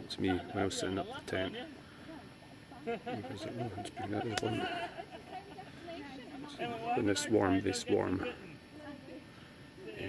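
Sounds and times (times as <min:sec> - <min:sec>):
man laughing: 0:02.8 - 0:05.5.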